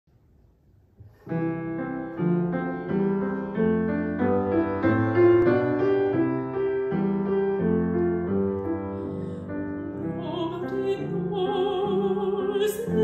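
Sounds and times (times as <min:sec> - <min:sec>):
upright piano playing: 0:01.2 - 0:13.0.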